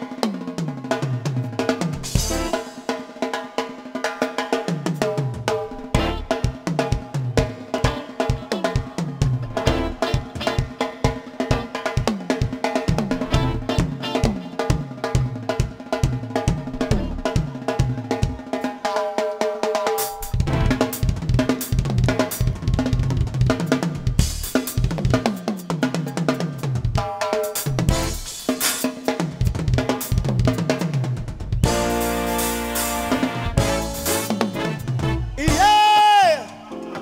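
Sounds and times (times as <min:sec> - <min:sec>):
drum kit solo: 0:00.0 - 0:37.0
sustained pitched backing: 0:02.0 - 0:02.7, 0:13.1 - 0:14.4, 0:20.2 - 0:21.3, 0:31.6 - 0:35.8.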